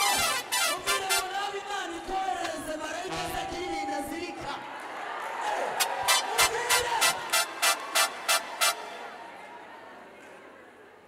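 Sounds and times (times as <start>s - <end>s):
crowd voices: 3.1s - 11.0s.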